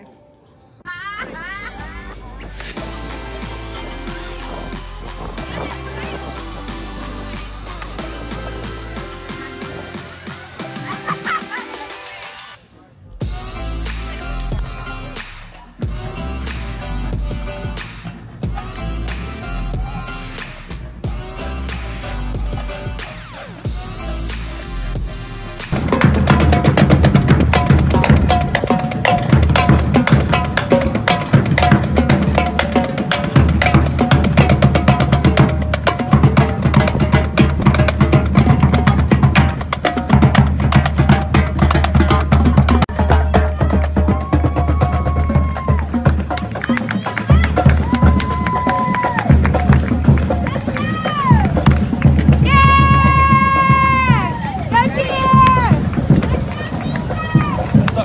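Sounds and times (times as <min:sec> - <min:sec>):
voices calling and whooping: 0:00.9 - 0:12.6, 0:42.8 - 0:58.0
marching drumline: 0:02.7 - 0:12.2, 0:13.2 - 0:58.0.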